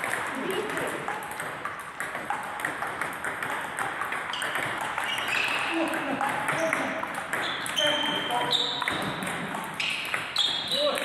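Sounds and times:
table tennis balls clicking: 0.0s - 11.0s.

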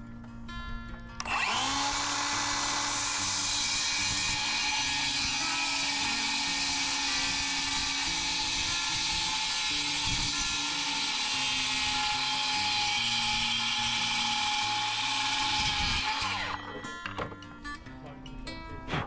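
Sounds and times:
circular saw cutting board: 1.2s - 17.4s.

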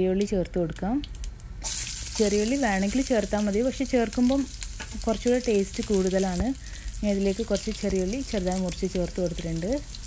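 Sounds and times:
food sizzling in hot oil: 1.2s - 10.0s.

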